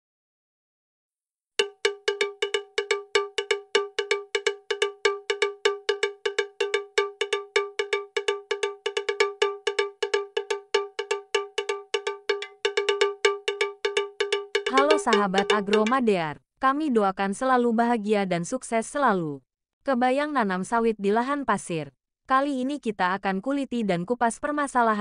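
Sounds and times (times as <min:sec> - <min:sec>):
bell-like percussion struck rapidly: 0:01.6 - 0:16.2.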